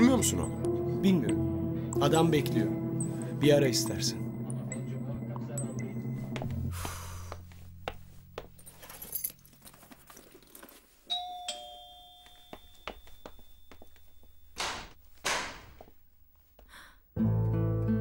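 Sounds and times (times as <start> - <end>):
background music: 0.0 - 9.3, 17.2 - 18.0
two-note doorbell chime: 11.1 - 13.8.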